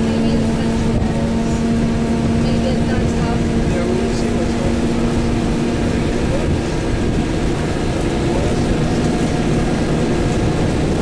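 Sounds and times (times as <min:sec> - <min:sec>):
vehicle engine and road noise: 0:00.0 - 0:11.0.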